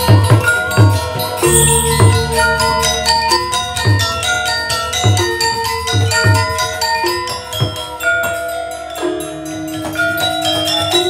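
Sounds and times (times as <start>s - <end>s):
gamelan metallophones ringing: 0.0s - 11.0s.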